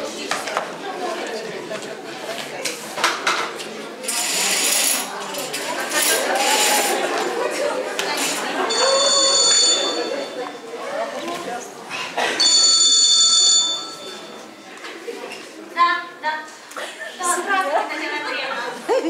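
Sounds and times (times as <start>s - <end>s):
voices in a hall: 0.0s - 19.0s
telephone trilling ring: 8.6s - 10.7s, 12.4s - 14.6s.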